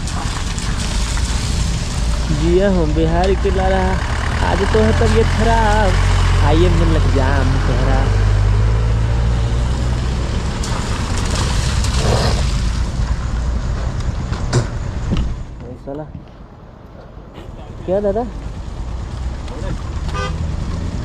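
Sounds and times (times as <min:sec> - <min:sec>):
vehicle engine idling: 0:00.0 - 0:07.6
road noise: 0:00.0 - 0:21.0
voices: 0:02.2 - 0:08.3, 0:17.3 - 0:18.4, 0:19.4 - 0:19.9.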